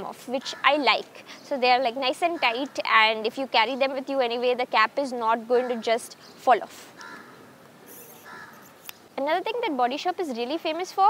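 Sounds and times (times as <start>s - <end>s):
crow cawing: 7.0s - 7.5s, 8.1s - 8.8s.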